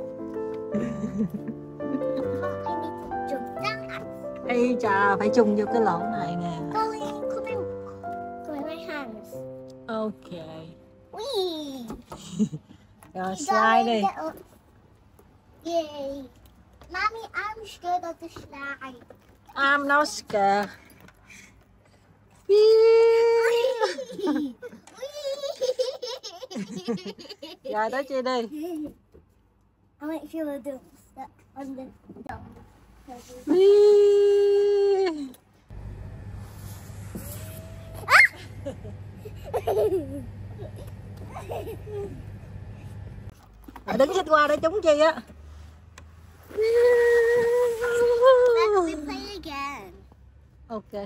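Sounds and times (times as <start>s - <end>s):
child crying out: 37.3s - 38.5s.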